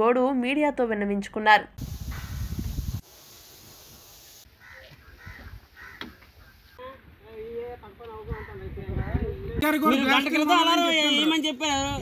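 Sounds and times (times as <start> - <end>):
steady hiss: 1.8 - 4.7
harsh bird calls: 4.5 - 6.8.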